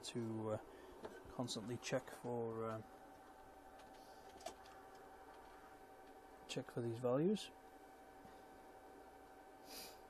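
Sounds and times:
faint steady whine: 0.0s - 10.0s.

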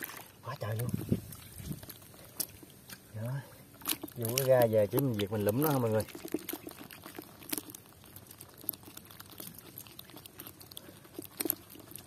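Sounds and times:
hand squelching in mud: 0.0s - 12.0s.

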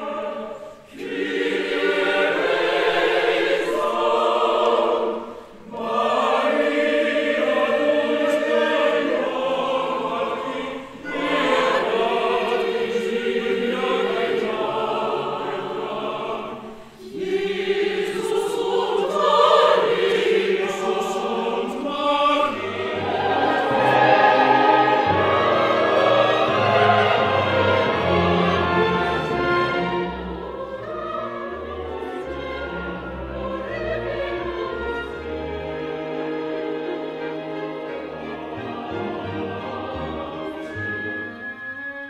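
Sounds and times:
mixed choir singing: 0.0s - 42.0s.

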